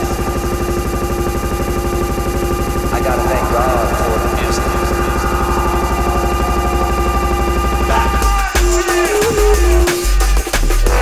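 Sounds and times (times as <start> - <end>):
drum and bass music: 0.0 - 11.0.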